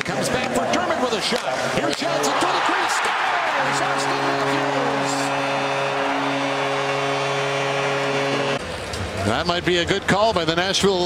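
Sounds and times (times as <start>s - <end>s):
crowd cheering: 1.8s - 9.2s
arena goal horn: 1.9s - 8.6s.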